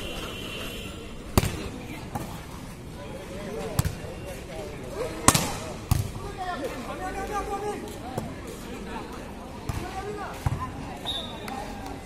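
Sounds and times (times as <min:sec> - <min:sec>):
volleyball being struck: 0:01.3 - 0:01.7.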